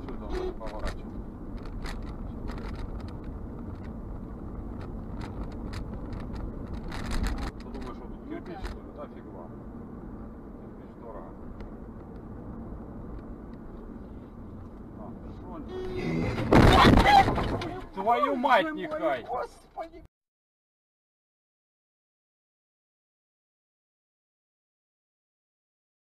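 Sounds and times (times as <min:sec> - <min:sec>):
car road and engine rumble: 0:00.0 - 0:20.1.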